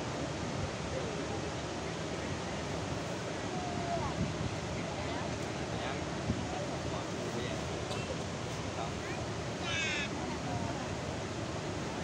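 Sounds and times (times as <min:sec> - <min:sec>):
water rushing through spillway: 0:00.0 - 0:12.0.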